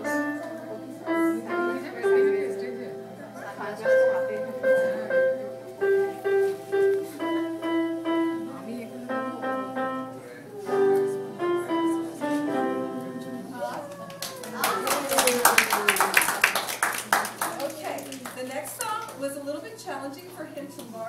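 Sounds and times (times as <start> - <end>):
electronic keyboard melody: 0.0 - 13.6
people clapping: 13.7 - 19.3.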